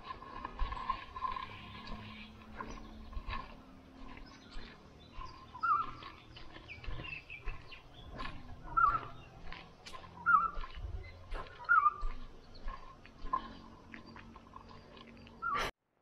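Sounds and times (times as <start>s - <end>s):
bird warbling call: 4.5s - 6.2s, 8.6s - 9.3s, 10.2s - 10.6s, 11.5s - 12.0s, 15.2s - 15.7s.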